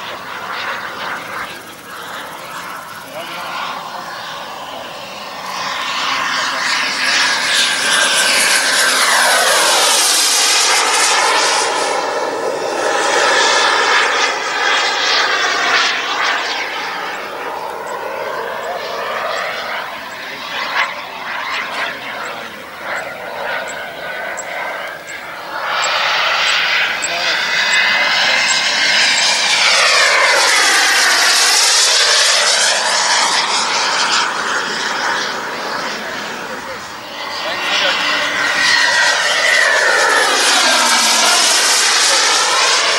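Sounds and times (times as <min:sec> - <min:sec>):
model jet turbine whining: 0:00.0 - 0:42.9.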